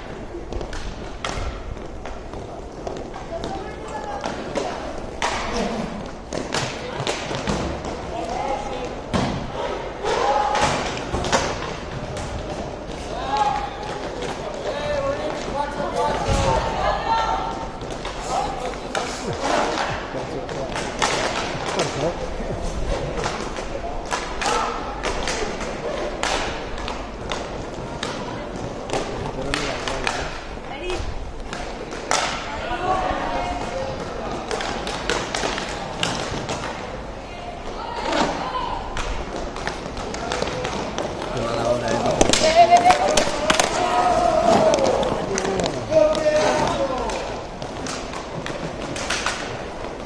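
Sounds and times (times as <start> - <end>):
hockey sticks clacking: 0.0 - 9.4, 10.0 - 16.5, 17.5 - 50.0
voices shouting: 41.4 - 47.3.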